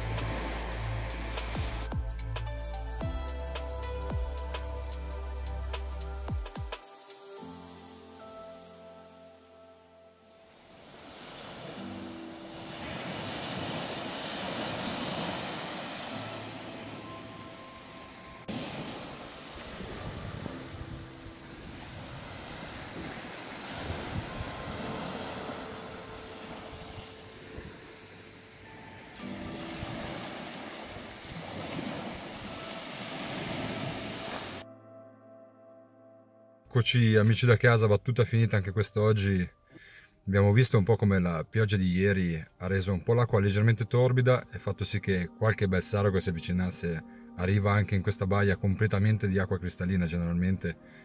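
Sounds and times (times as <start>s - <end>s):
waves breaking on sand beach: 0.0s - 1.9s, 10.5s - 34.6s
faint background music: 24.4s - 33.9s, 34.6s - 51.0s.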